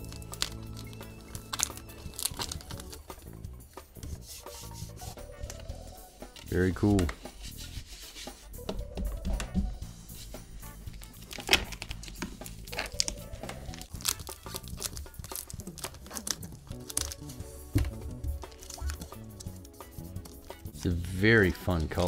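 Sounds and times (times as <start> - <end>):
vinyl wrap crinkling and tearing: 0.0 - 3.3, 10.8 - 22.0
background music: 0.0 - 22.0.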